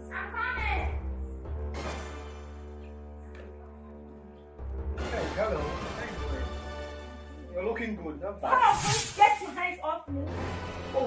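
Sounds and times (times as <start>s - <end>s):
person hissing sharply: 8.6s - 9.6s.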